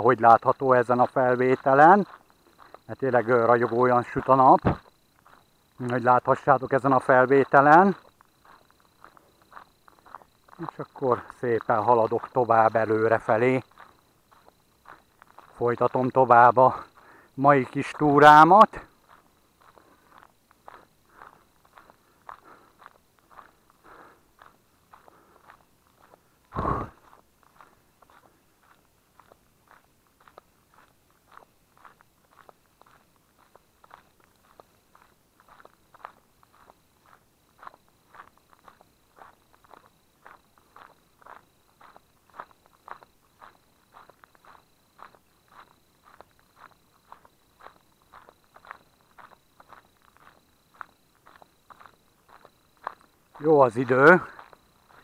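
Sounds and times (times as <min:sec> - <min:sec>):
footsteps on gravel: 0:00.1 - 0:55.0
loud thump: 0:04.6 - 0:04.8.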